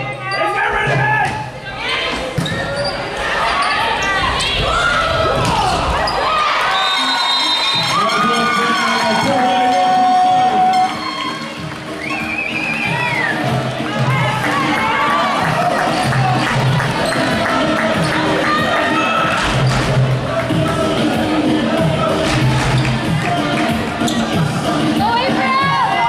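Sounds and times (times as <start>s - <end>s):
players and spectators shouting: 0.0s - 26.0s.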